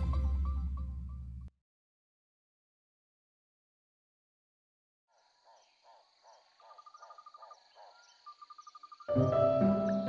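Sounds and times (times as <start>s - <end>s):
insects trilling: 5.1s - 10.0s.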